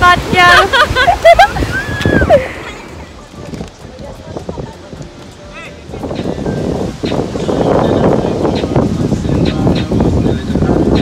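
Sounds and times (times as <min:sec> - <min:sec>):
rough sea surf: 0:00.0 - 0:11.0
wind buffeting microphone: 0:00.0 - 0:11.0.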